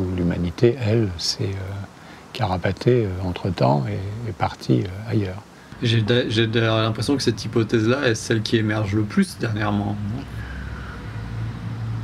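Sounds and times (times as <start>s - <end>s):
distant road traffic rumble: 0.0s - 12.0s
faint thin whine: 0.0s - 12.0s.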